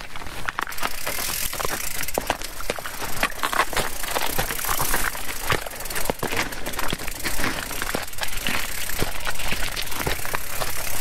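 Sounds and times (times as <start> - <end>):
bike frame and chain clattering: 0.0 - 11.0
tyres crunching over gravel: 0.0 - 11.0.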